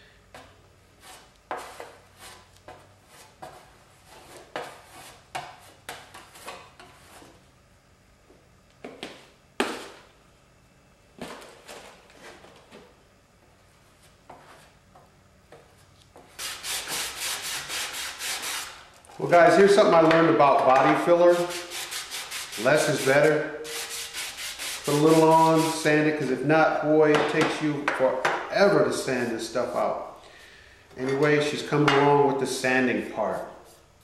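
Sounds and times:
sanding block sanding: 16.4 - 18.8, 21.2 - 25.9.

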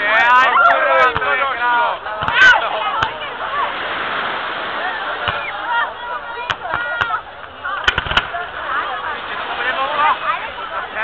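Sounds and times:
crowd chatter: 0.0 - 11.0
fireworks bangs: 6.3 - 8.6.

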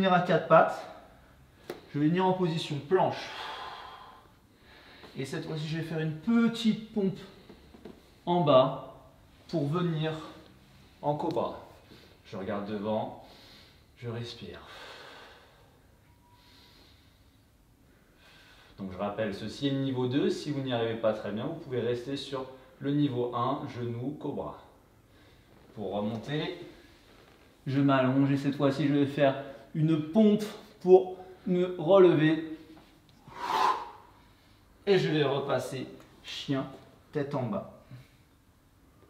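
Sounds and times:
person breathing faintly: 3.2 - 5.2, 32.5 - 34.8.

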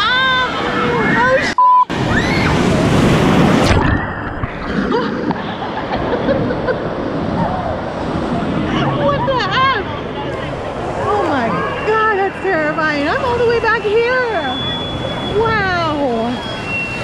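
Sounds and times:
people screaming: 0.0 - 2.9
rush of churning water: 0.0 - 17.0
surf and sloshing: 0.0 - 17.0
people laughing: 4.7 - 7.4.

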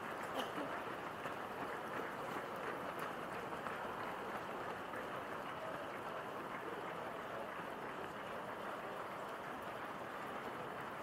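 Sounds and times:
runners' footfalls on asphalt: 0.0 - 11.0.

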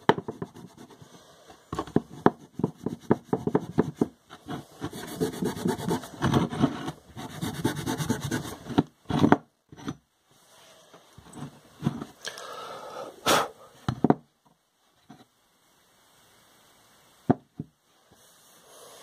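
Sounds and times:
knocks on wooden bench: 17.3 - 17.7.

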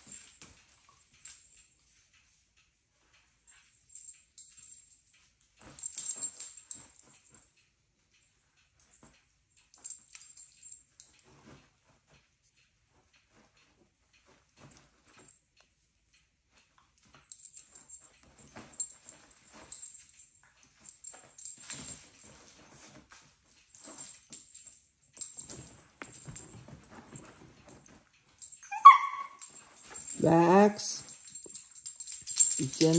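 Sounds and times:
dogs scuffling and snuffling: 8.8 - 15.4, 16.6 - 32.9
dog yip: 28.6 - 29.5.

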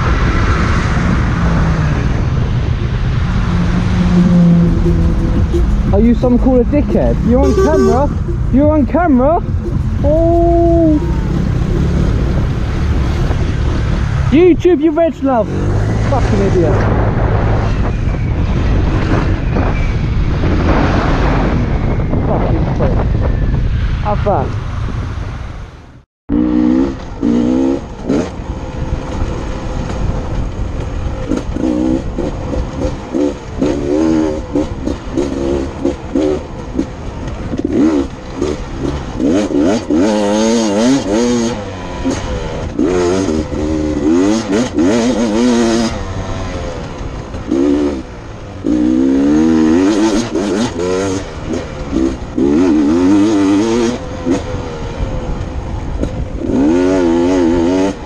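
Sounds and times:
dirt bike engine revving: 3.1 - 21.6, 26.3 - 30.2, 31.1 - 58.0.

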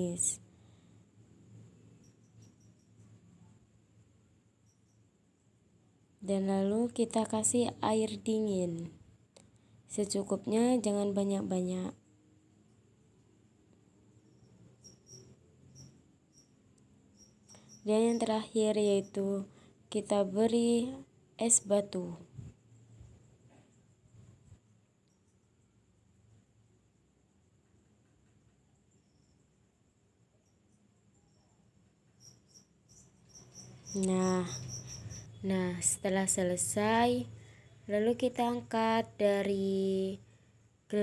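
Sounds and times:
cricket chirps: 0.0 - 41.0
cricket trilling: 0.0 - 41.0.

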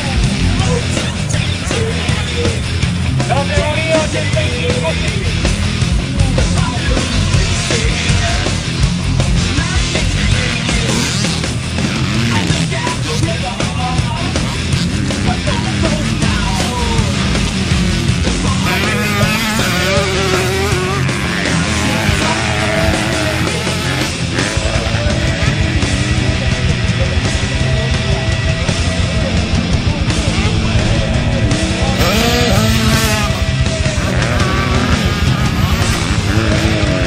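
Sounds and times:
dirt bike engine revving: 0.0 - 37.0
loud rock music: 0.0 - 37.0.

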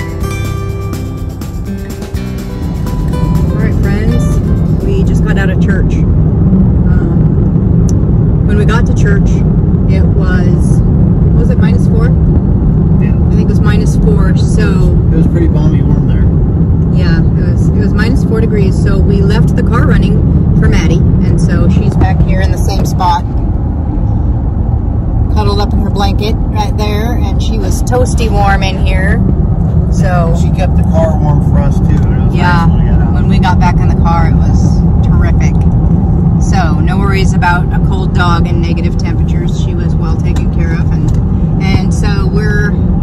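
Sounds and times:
guitar music: 0.0 - 6.8
car cabin road noise: 0.0 - 43.0.

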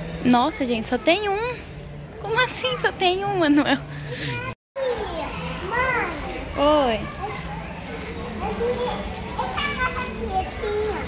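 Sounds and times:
young child's high-pitched voice: 4.4 - 6.4.

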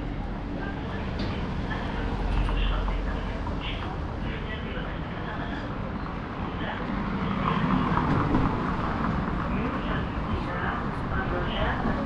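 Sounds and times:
passersby talking: 0.0 - 12.0
traffic noise: 0.0 - 12.0.

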